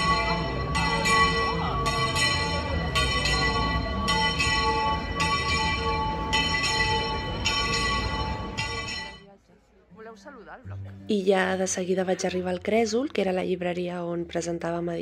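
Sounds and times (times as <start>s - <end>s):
bells ringing: 0.0s - 9.3s.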